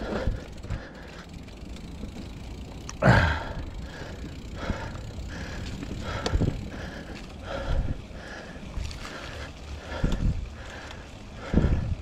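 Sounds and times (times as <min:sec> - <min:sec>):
bike tyres rumbling on dirt trail: 0:00.0 - 0:12.0.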